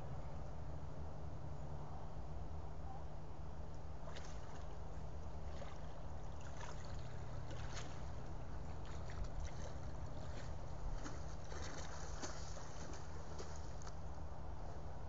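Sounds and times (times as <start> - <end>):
steady low hum: 0.0 - 15.0
water sloshing and splashing: 4.0 - 14.1.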